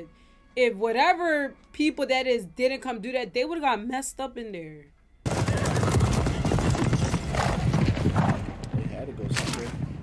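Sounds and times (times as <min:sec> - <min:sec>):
horses galloping hooves clatter: 0:05.2 - 0:10.0.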